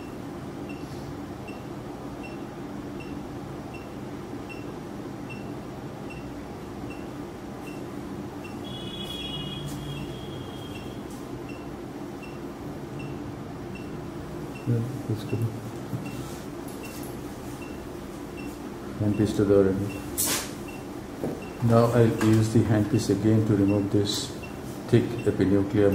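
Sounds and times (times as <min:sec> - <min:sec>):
patient monitor beeps: 0:00.0 - 0:06.3, 0:06.9 - 0:12.4, 0:13.0 - 0:22.5, 0:23.5 - 0:25.9
equipment hum: 0:00.0 - 0:25.9
long high electronic tone: 0:08.6 - 0:11.1.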